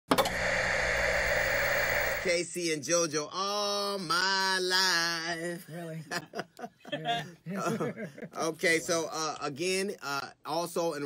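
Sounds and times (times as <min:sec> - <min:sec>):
tv static hiss: 0:00.1 - 0:02.4.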